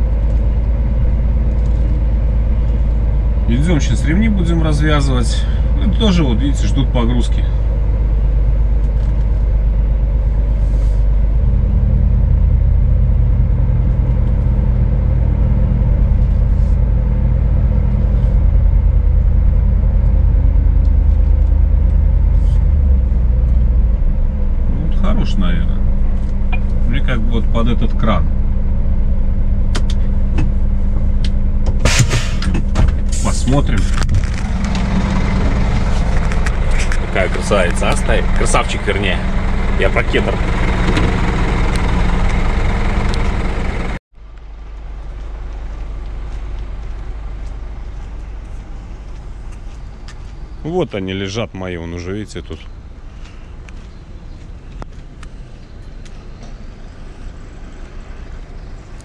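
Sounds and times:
large engine rumbling: 0.0 - 59.0.

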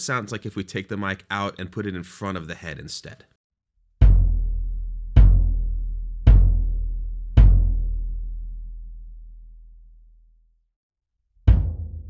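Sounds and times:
kick drum booming: 4.0 - 8.0, 11.5 - 12.0.

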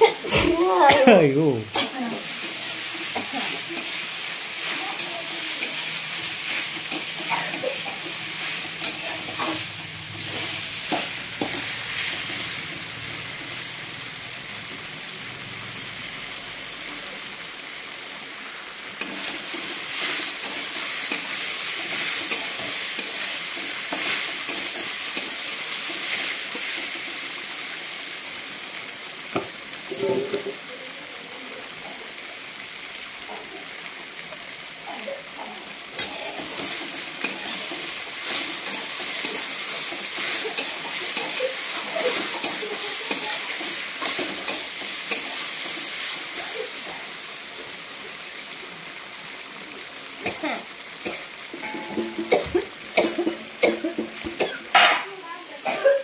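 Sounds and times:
vegetables frying hiss: 0.0 - 56.0
spatula scraping a pan: 1.7 - 12.4, 36.0 - 46.2, 54.0 - 55.1.

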